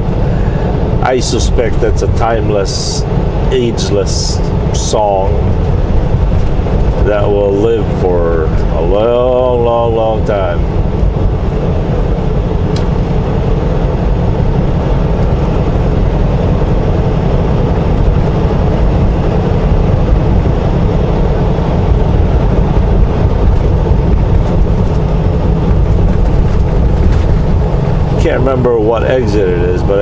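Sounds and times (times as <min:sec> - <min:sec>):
truck cab engine and road rumble: 0:00.0 - 0:30.0.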